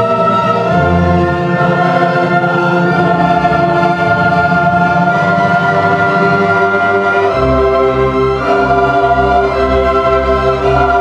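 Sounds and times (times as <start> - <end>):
choir singing held chords: 0.0 - 11.0
strings and brass orchestra: 0.0 - 11.0.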